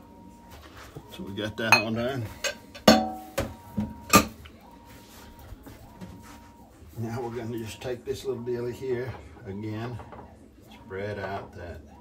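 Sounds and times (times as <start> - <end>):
kitchenware clinking: 1.7 - 4.4
kitchenware knocks: 2.8 - 4.4.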